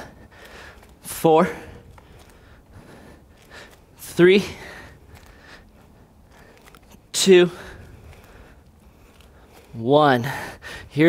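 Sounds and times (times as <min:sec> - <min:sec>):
heavy breathing: 0:00.0 - 0:11.0.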